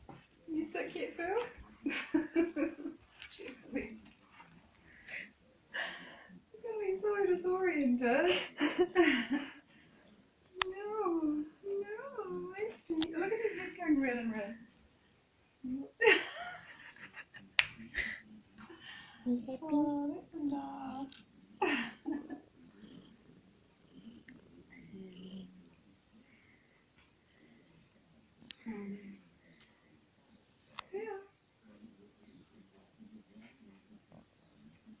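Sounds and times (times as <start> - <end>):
faint low uneven sounds: 0.0 - 35.0.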